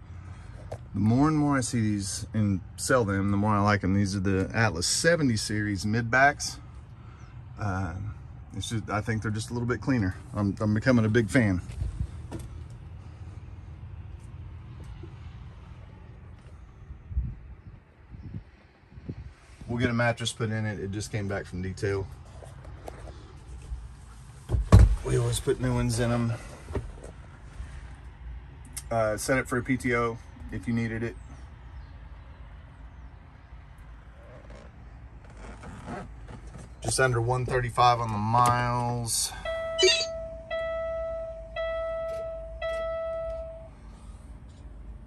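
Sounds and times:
low rumble inside truck cab: 0:00.0 - 0:45.0.

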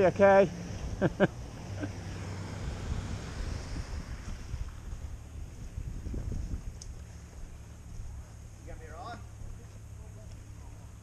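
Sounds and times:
wind buffeting microphone: 0:02.5 - 0:08.2.

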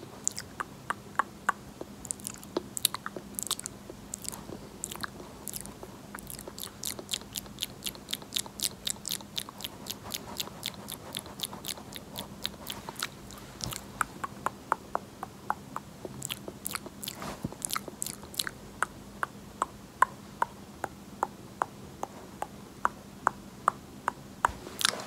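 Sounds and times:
wet mouth clicks: 0:00.2 - 0:25.0.

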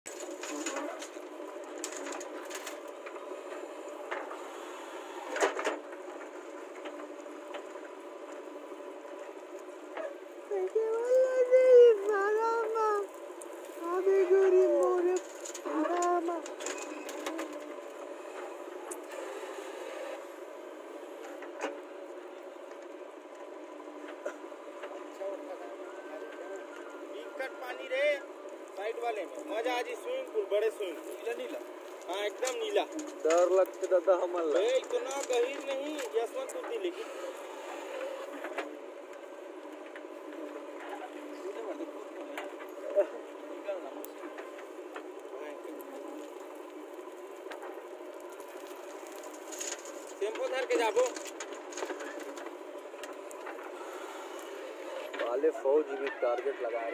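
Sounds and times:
diesel engine of backhoe digging: 0:00.1 - 0:10.8, 0:12.1 - 0:56.9
people calling out: 0:10.0 - 0:16.5.

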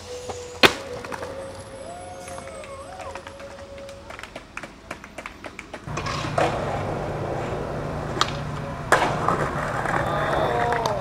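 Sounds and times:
skateboard wheels rolling on concrete: 0:00.0 - 0:11.0
skateboard clicks: 0:04.9 - 0:11.0
skateboard cracks: 0:05.9 - 0:11.0.

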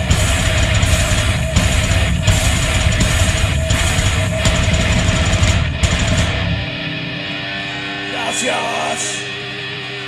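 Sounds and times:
live metal band playing: 0:00.0 - 0:10.0.

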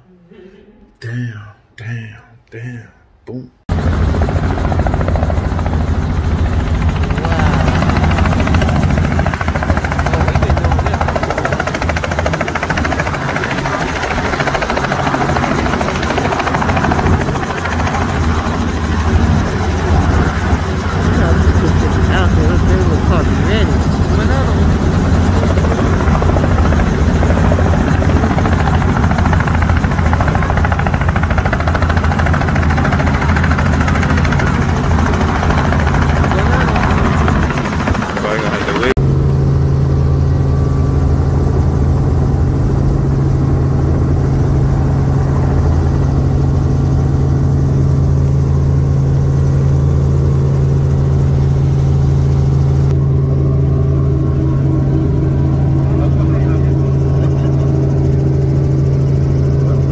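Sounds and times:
helicopter rotor and engine drone: 0:03.7 - 0:59.9.

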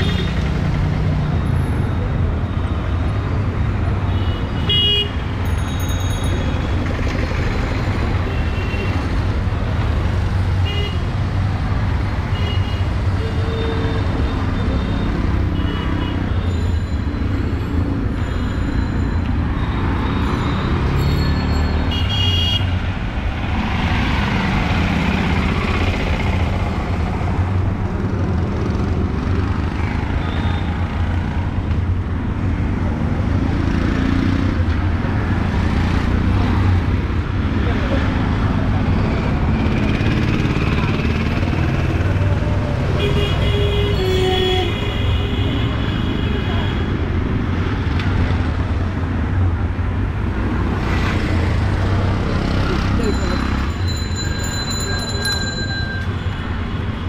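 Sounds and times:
vehicle engines rumbling: 0:00.0 - 0:57.0
people's voices: 0:52.5 - 0:53.8.

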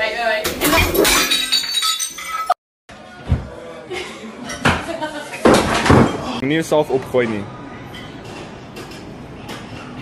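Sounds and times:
glass breaking with a crash: 0:00.5 - 0:02.6
glass pieces clinking: 0:00.6 - 0:02.6.

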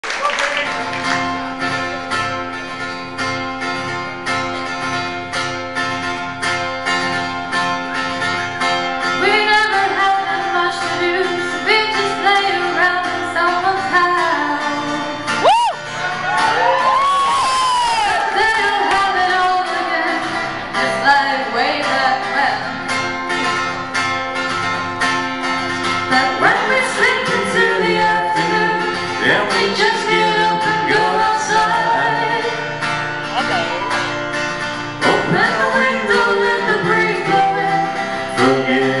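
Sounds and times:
acoustic guitar strumming: 0:00.6 - 0:39.0
person singing: 0:26.1 - 0:32.6, 0:35.0 - 0:39.0.

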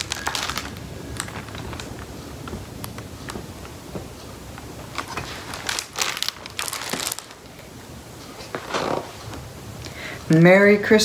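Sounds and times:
book pages rustling: 0:00.0 - 0:09.4.

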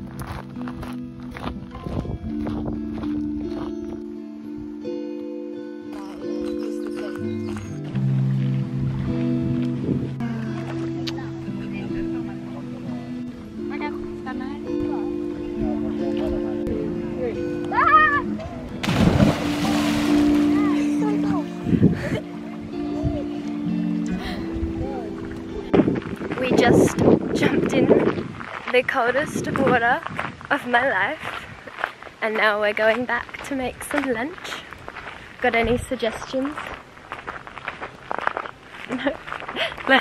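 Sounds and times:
held chords: 0:00.0 - 0:27.2
bass line: 0:14.1 - 0:28.1
woman talking: 0:26.3 - 0:28.1, 0:28.7 - 0:31.4, 0:32.2 - 0:34.7, 0:35.4 - 0:36.7, 0:39.8 - 0:40.0.

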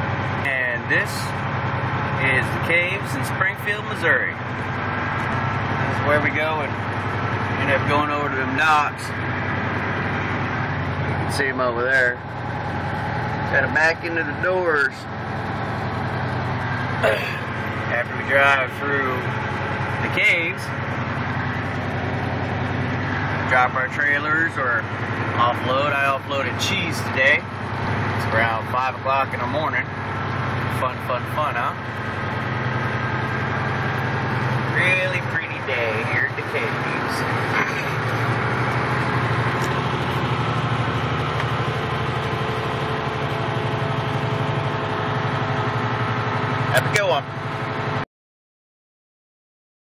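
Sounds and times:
diesel truck engine running: 0:00.0 - 0:48.0.

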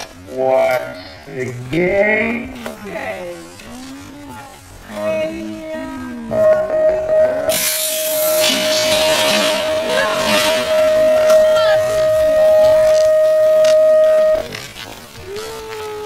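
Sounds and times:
bikes riding off: 0:00.0 - 0:16.0
long low electronic tone: 0:05.1 - 0:15.2.

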